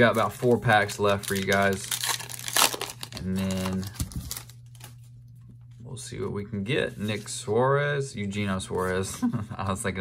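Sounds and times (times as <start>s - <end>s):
cards and paper wrapper rustling: 0.0s - 5.1s.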